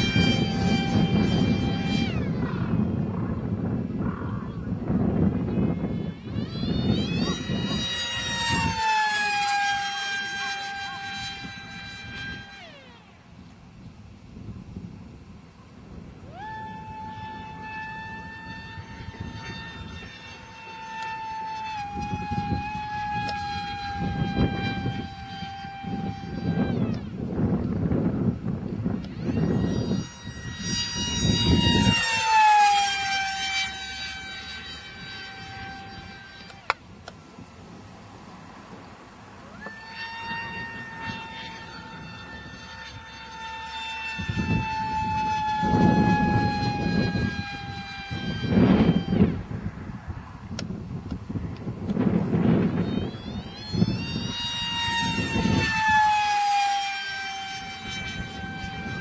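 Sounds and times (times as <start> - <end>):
low gusty rumble: 0.0 - 56.2
rc jet high-pitched whine: 0.0 - 59.0.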